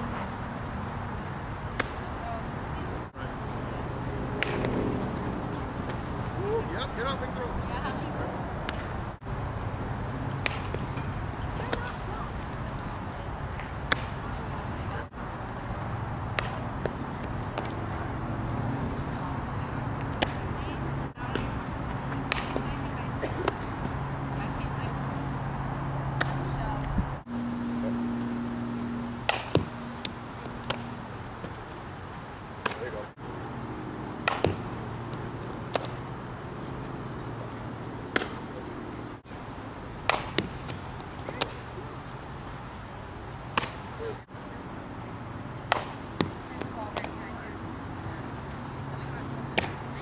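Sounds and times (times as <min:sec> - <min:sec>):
low hum: 0:14.1 - 0:41.1.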